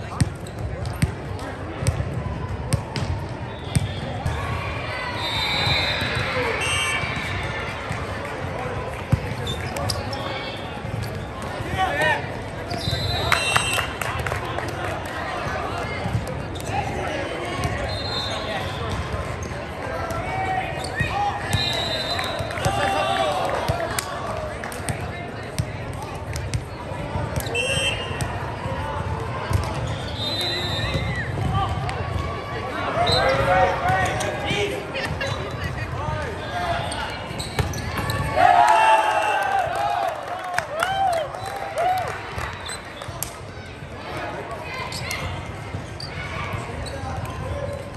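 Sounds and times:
players calling out: 3.5 - 8.2
sneakers squeaking on court floor: 9.1 - 11.8, 12.6 - 13.7, 20.7 - 22.4, 33.0 - 34.4, 35.1 - 38.3, 44.8 - 47.9.

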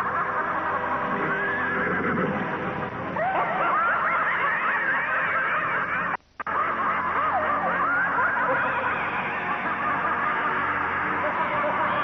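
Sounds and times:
horse whinnying: 0.0 - 6.2.

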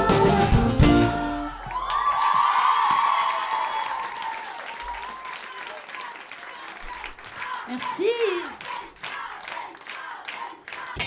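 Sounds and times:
acoustic pop song: 0.0 - 1.6
audience clapping and cheering: 1.4 - 11.0.

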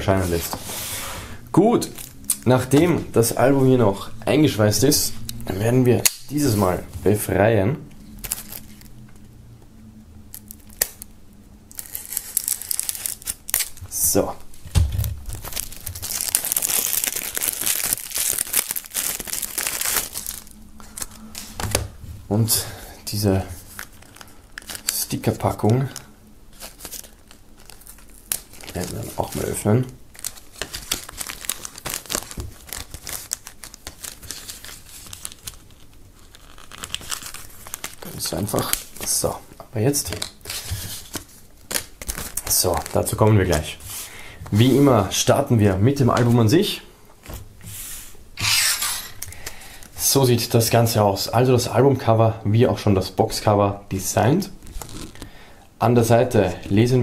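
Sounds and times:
plastic bag crinkling: 8.2 - 9.0, 11.7 - 22.0, 23.1 - 44.8, 54.6 - 55.5
plastic wrap slit and torn: 10.3 - 11.1, 11.7 - 13.9, 15.1 - 21.8, 26.6 - 29.5, 30.1 - 39.2, 40.1 - 43.1, 48.4 - 49.4, 54.6 - 55.2.

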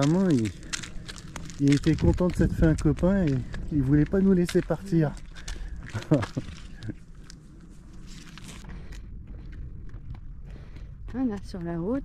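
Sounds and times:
person speaking: 0.0 - 0.8, 1.5 - 6.6
donkey hooves on pavement: 0.0 - 12.0
footsteps on paved road: 0.0 - 12.0.

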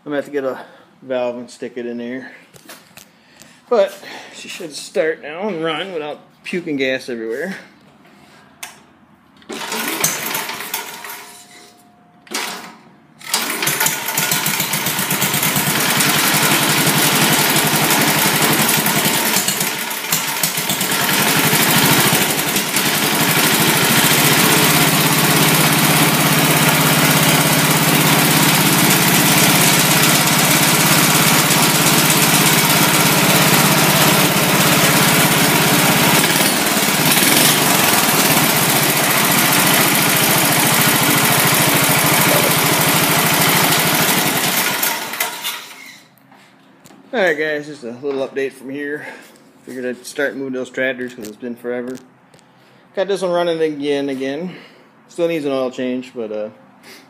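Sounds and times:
small engine running: 9.5 - 11.2, 13.2 - 46.0.

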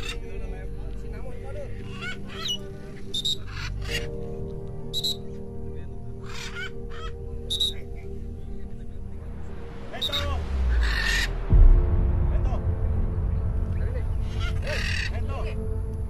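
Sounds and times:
music with held chords: 0.0 - 16.0
parrot squawks: 1.9 - 4.1, 4.9 - 5.2, 6.2 - 7.8.

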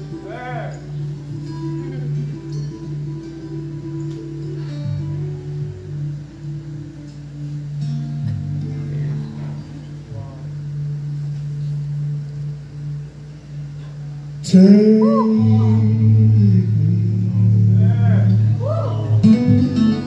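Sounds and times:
acoustic guitar picking: 0.0 - 20.0.

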